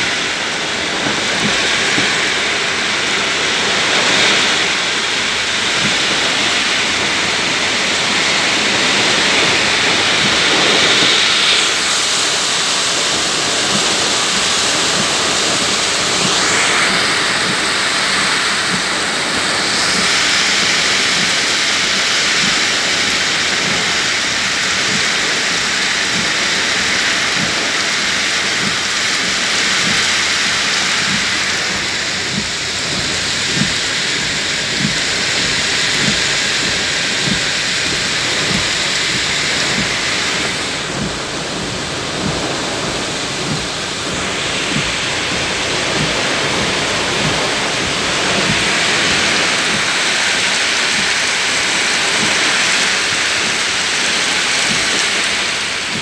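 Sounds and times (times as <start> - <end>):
rushing whirlwind wind: 0.0 - 28.3
heavy driving rain: 0.0 - 56.0.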